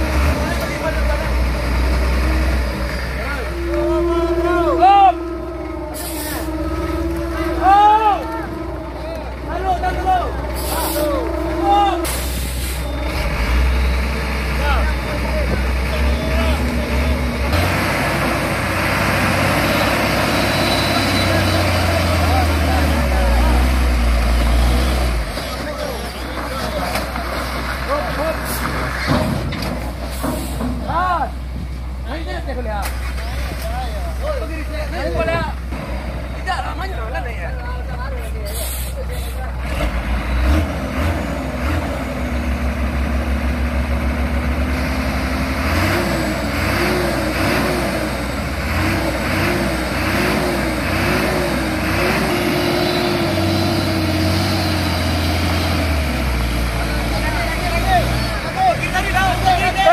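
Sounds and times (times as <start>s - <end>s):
diesel truck engine rumbling: 0.0s - 59.9s
men shouting: 3.4s - 12.1s, 57.5s - 59.9s.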